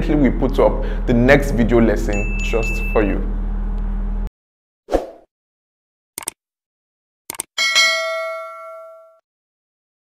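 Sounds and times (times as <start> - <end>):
bright bell ding: 2.1 - 3.2, 7.6 - 9.2
quick clicks: 6.2 - 6.4, 7.3 - 7.5.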